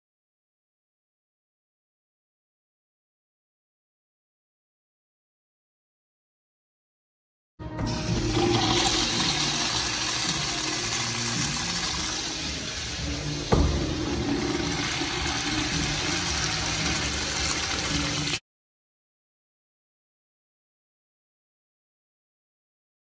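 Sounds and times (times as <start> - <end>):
urinal flushing water rush: 7.9 - 18.4
sharp knock: 13.5 - 14.0.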